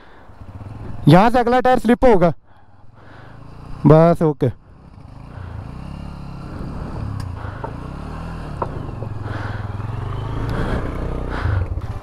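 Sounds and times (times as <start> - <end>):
motorcycle engine revving: 0.0 - 1.9, 2.8 - 12.0.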